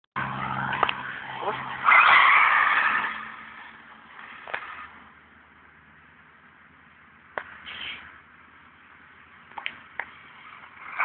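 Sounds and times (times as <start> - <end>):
tyre skid: 0.2 - 5.1, 9.7 - 11.0
buggy engine humming: 0.2 - 11.0.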